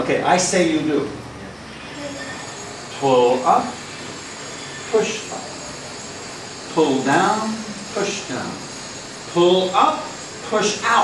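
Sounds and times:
faint high whine: 0.0 - 11.0
background hiss: 1.6 - 11.0.

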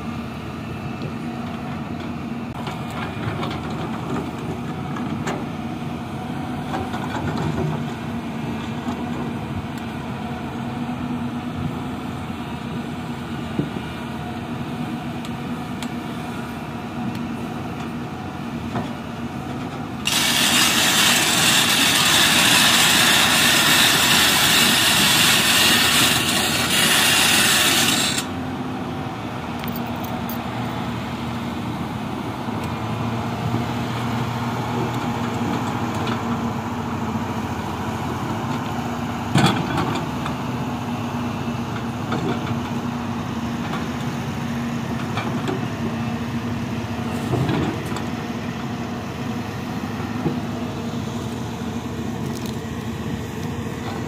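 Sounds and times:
excavator diesel engine running: 0.0 - 54.0
loud harsh hiss: 20.0 - 28.3.

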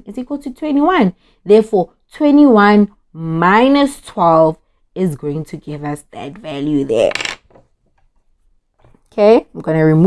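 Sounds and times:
person speaking: 5.0 - 7.4.

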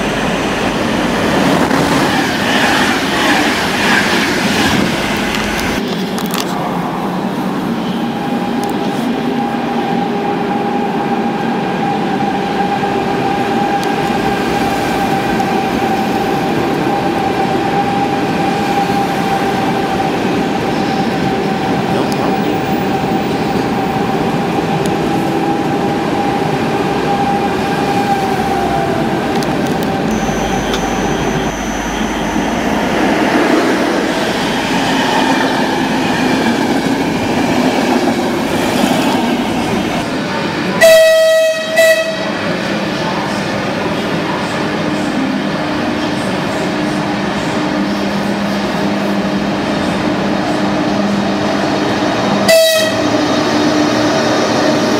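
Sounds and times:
electric train whine: 0.0 - 54.9
rail and wheel noise: 0.0 - 54.9
train rolling rumble: 0.0 - 54.9
train horn: 30.1 - 32.9, 40.8 - 42.4, 52.4 - 53.2.

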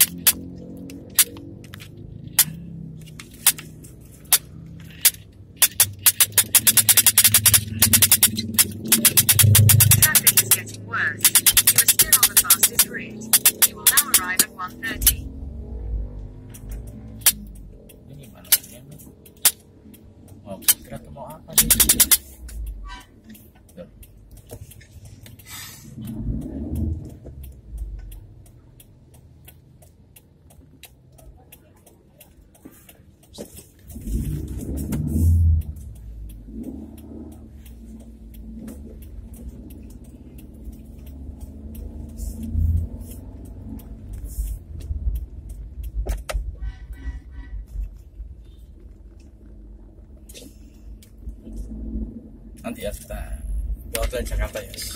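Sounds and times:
car rumble inside cabin: 0.0 - 54.9
light ticks: 0.0 - 54.9.

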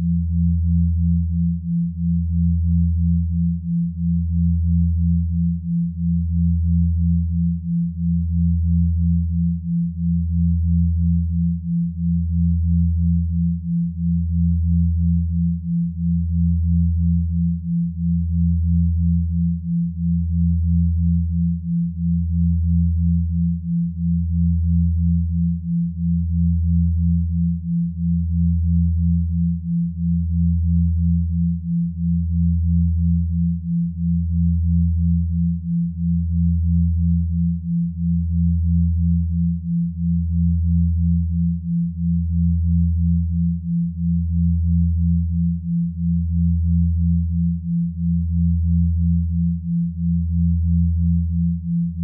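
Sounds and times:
higher pulsing sine tone: 0.0 - 52.0
low pulsing sine hum: 0.0 - 52.0.

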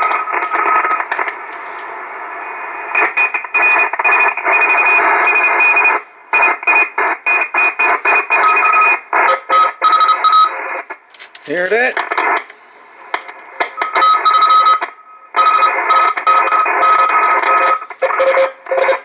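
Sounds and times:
radio static: 0.0 - 5.2.

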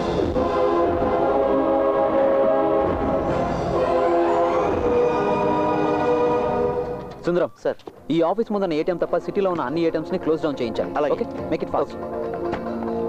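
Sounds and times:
loud sustained orchestral chords: 0.0 - 7.2.

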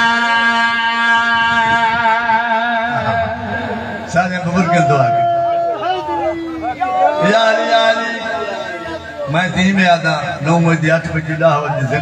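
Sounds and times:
man chanting a long sung note: 0.0 - 8.9.

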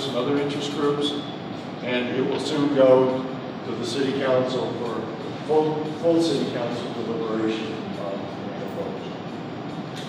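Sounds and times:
even room hiss: 0.0 - 10.0.

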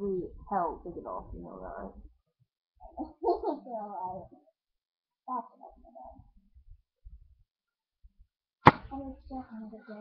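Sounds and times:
sharp loud knock: 8.6 - 8.9.

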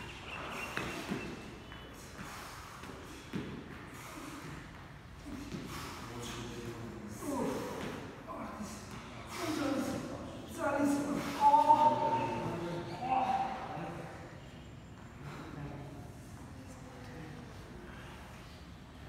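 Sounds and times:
people breathing hard: 0.0 - 19.0
voices: 0.0 - 19.0.

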